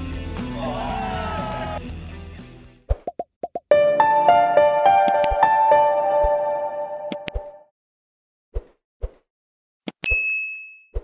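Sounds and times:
bright bell ding: 10.1s - 10.9s.

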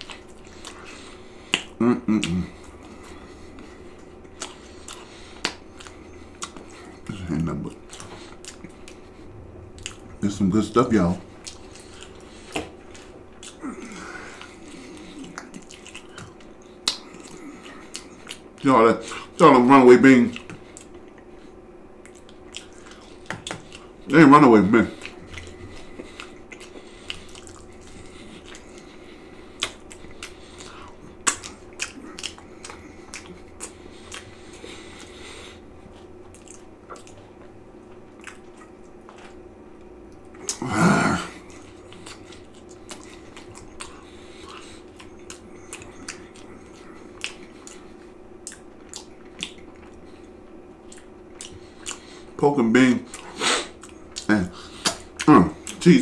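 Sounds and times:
chewing and mouth smacks: 0.0s - 19.4s, 20.3s - 24.1s, 24.9s - 40.7s, 41.3s - 52.4s, 53.0s - 56.0s
steady low hum: 0.0s - 56.0s
person humming mm: 1.8s - 2.7s, 40.5s - 41.4s.

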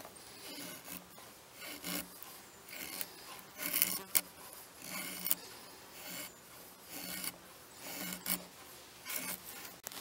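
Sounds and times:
wood scraping on knife blade: 0.0s - 10.0s.

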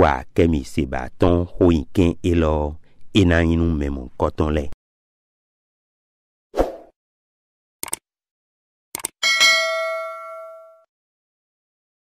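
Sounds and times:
mouse clicks: 7.8s - 8.0s, 9.0s - 9.2s
bright bell chime: 9.2s - 10.9s.

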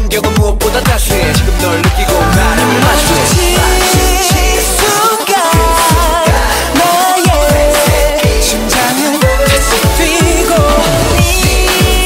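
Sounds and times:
deep kick drums: 0.0s - 4.8s, 9.2s - 12.0s
male voice singing: 0.0s - 12.0s.

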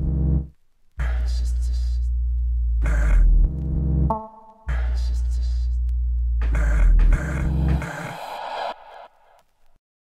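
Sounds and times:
deep electronic bass drone: 0.0s - 9.0s
harsh gritty noise: 6.4s - 9.8s.

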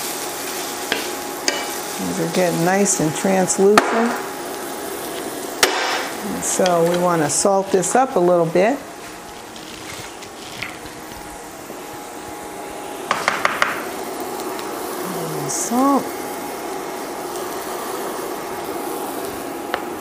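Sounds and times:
onions sizzling in skillet: 0.0s - 20.0s
person humming: 15.0s - 15.9s.

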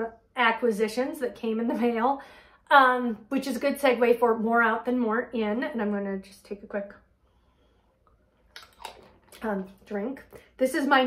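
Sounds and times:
woman sipping and swallowing: 7.9s - 9.8s.

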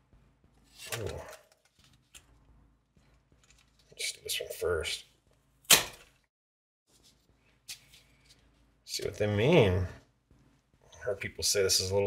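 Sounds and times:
faint clicks of handled parts: 3.1s - 4.0s.

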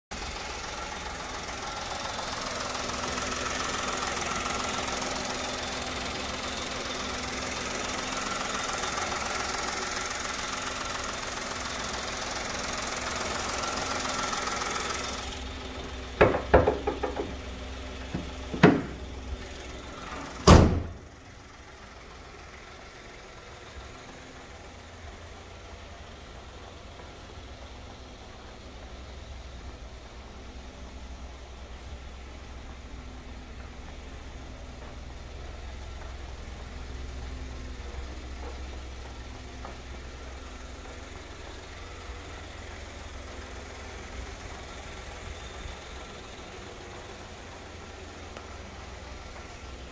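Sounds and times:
car engine idling: 0.1s - 49.9s
car bonnet shutting thump: 16.2s - 17.4s, 18.1s - 19.0s, 20.4s - 21.0s
clanks and knocks: 16.2s - 17.5s, 18.1s - 19.0s.

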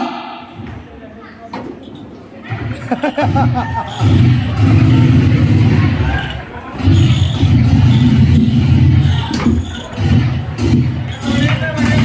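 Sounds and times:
loud low rumble: 3.3s - 6.2s.

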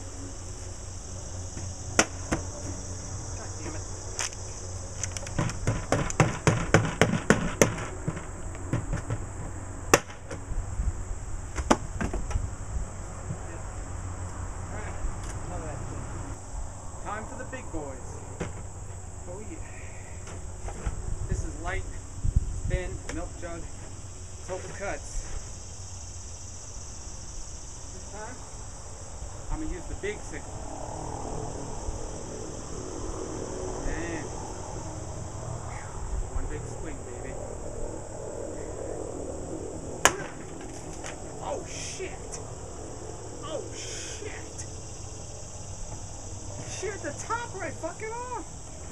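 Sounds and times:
high insect drone: 0.0s - 48.9s
low outdoor rumble: 0.0s - 48.9s
blade whacking water jug: 5.4s - 9.2s.

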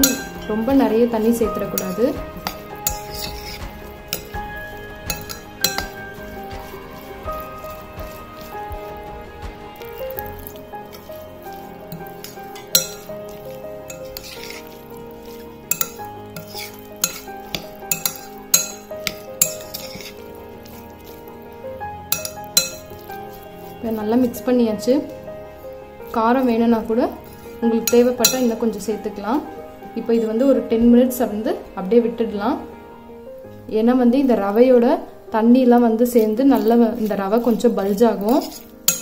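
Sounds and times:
metal spoon scraping glass bowl: 0.0s - 29.4s, 36.2s - 39.0s
background music with held notes: 0.0s - 39.0s.

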